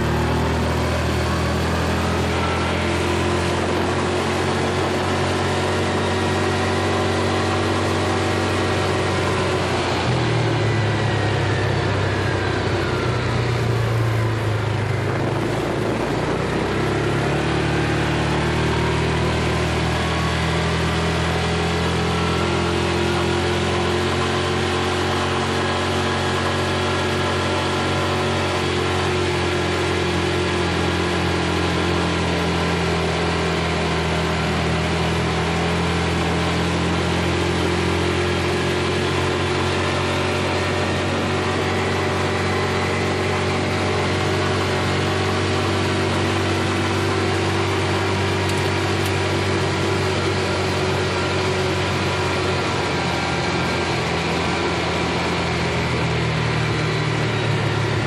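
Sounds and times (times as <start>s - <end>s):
utility vehicle engine running: 0.0s - 58.0s.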